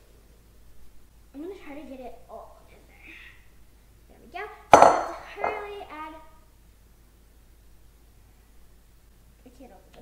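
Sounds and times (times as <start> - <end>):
glass bowl clinking on countertop: 4.7 - 5.6
glass bowl knock: 4.8 - 5.6.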